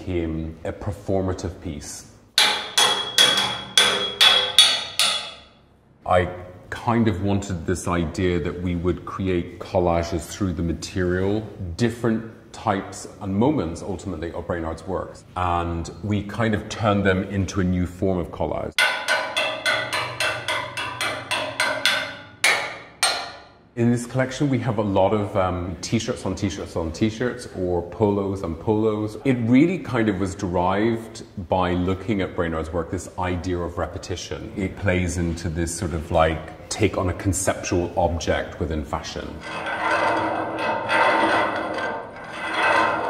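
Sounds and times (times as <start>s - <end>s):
sharp metallic strikes ringing: 2.4s - 5.6s.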